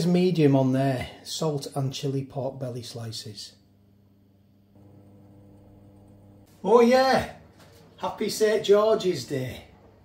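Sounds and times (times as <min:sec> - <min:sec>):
fan oven humming: 0:00.0 - 0:10.0.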